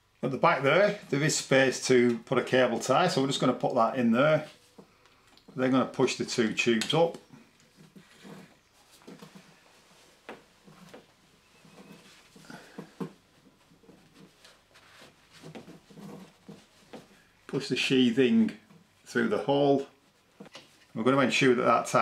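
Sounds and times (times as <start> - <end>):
plastic tubing rustling and scraping: 2.1 - 17.9, 18.5 - 21.1.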